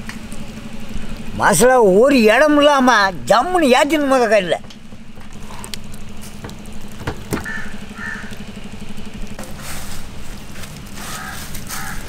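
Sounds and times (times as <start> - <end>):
engine running: 0.0 - 12.0
sharp knocks: 6.2 - 7.8.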